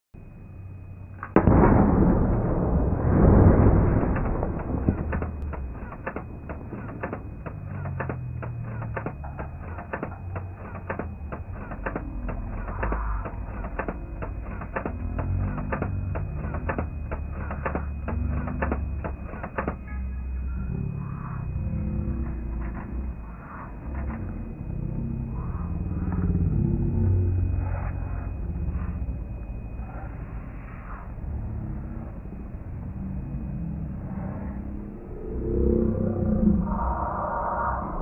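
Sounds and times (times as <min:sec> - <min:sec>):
cannon boom: 0:01.3 - 0:10.1.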